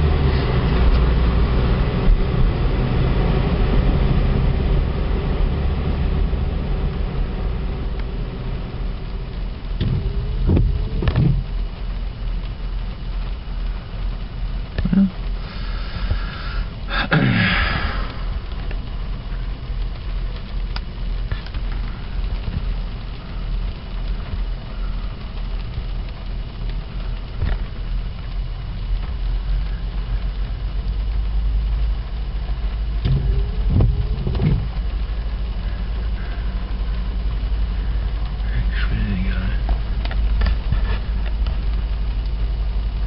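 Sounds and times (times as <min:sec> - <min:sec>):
car engine and road rumble: 0:00.0 - 0:43.0.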